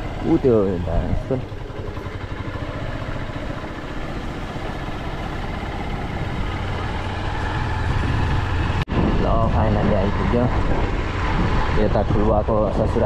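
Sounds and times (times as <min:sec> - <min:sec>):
motorcycle engine running: 0:00.0 - 0:13.0.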